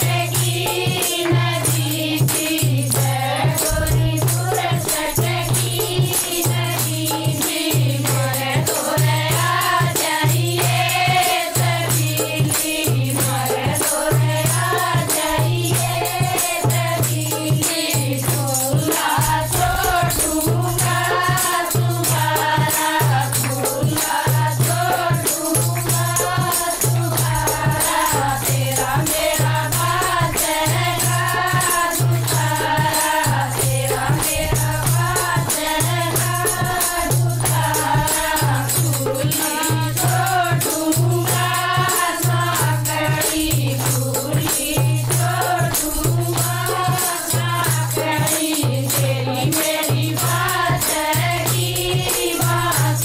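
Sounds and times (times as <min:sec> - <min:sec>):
jingling rattling percussion: 0:00.0 - 0:53.0
women singing in unison: 0:00.0 - 0:53.0.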